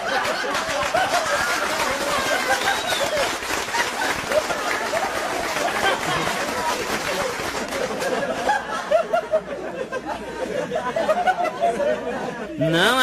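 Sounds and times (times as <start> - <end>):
audience clapping: 0.0 - 8.8
audience laughing: 0.0 - 12.6.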